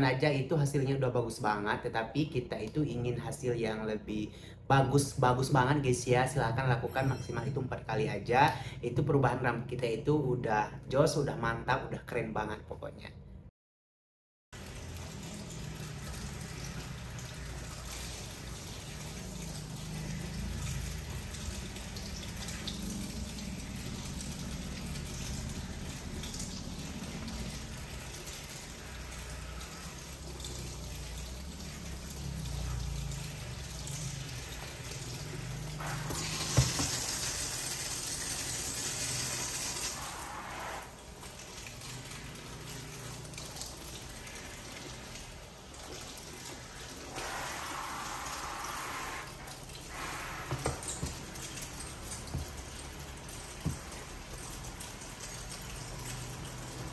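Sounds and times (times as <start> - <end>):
shower sprayer water running: 14.6 - 56.9.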